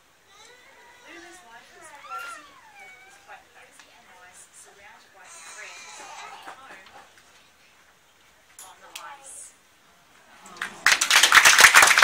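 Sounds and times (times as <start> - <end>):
small child calling out: 0.3 - 3.3.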